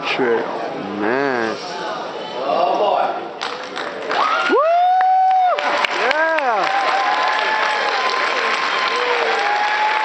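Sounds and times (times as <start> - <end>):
crowd cheering and clapping: 3.4 - 10.0
person whooping: 4.5 - 7.0.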